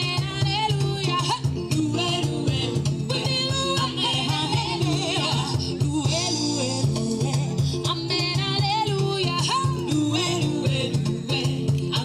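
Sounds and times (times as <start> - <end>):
pulsing bass beat: 0.0 - 12.0
upbeat band music: 0.0 - 12.0
women singing: 0.0 - 12.0.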